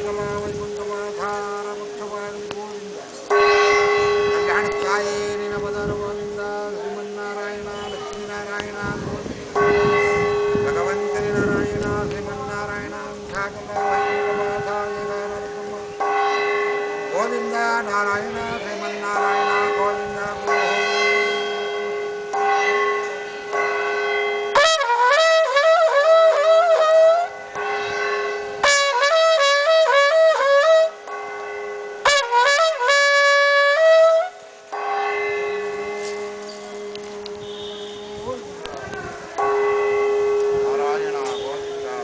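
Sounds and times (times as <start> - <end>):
brass horn held tone: 0.0 - 31.0, 32.0 - 34.4, 35.0 - 42.0
metal gong struck: 3.3 - 8.8, 9.6 - 24.6.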